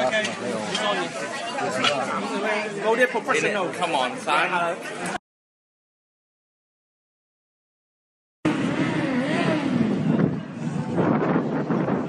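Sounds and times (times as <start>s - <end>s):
vehicle engine passing: 8.5s - 11.4s.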